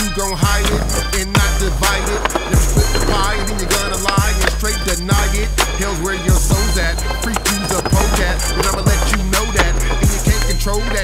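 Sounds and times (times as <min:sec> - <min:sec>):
hip hop beat: 0:00.0 - 0:11.0
skateboard rolling on concrete: 0:00.0 - 0:11.0.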